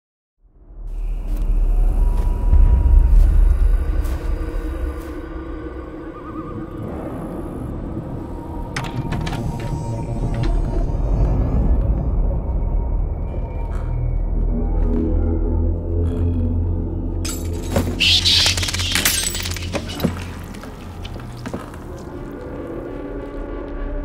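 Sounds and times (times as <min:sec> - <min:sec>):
deep low rumble: 0:00.6 - 0:17.3.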